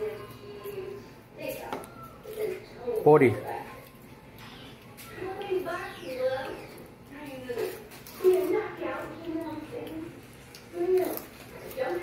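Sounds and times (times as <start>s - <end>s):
child talking: 0.0s - 12.0s
indistinct voices talking: 0.0s - 12.0s.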